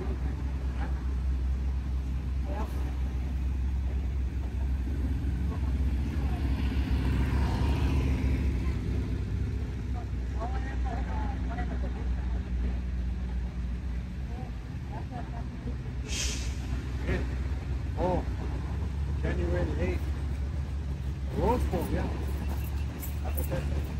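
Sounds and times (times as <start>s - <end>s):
faint voices: 0.0s - 23.9s
slow-moving vehicles rumbling: 0.0s - 23.9s.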